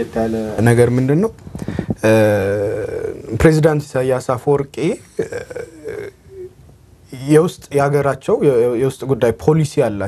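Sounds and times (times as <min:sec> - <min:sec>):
man's hesitant murmur: 0:02.1 - 0:03.3, 0:05.1 - 0:06.6.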